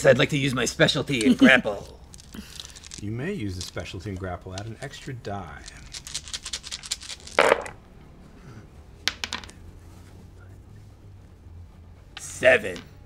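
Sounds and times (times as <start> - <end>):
dice rattling across a tabletop: 1.1 - 7.8, 9.0 - 9.6.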